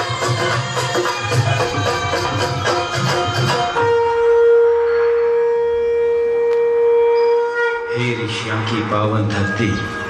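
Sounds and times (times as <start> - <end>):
long note on horn-like wind instrument: 3.8 - 8.2.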